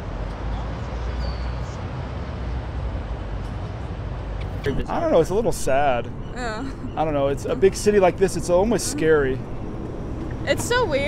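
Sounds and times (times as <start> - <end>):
street background rumble: 0.0 - 11.0.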